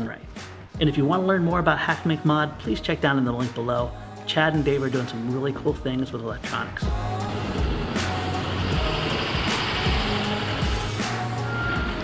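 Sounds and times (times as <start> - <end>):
background music: 0.0 - 12.0
bus engine running: 6.9 - 12.0
high-pitched reversing beep: 11.4 - 12.0.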